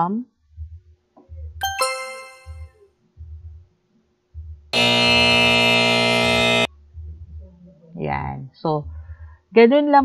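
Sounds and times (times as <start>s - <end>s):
loud electronic buzzer: 4.8s - 6.7s.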